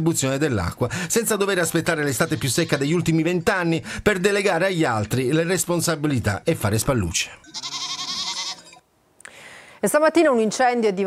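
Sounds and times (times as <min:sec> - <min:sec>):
goat bleating: 0:02.0 - 0:03.1, 0:07.4 - 0:08.8.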